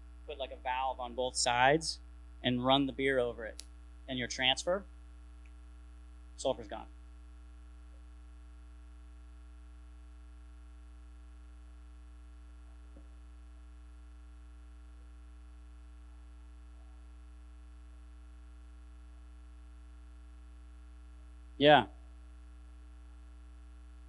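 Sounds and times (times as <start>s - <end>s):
electrical mains hum: 0.0s - 24.0s.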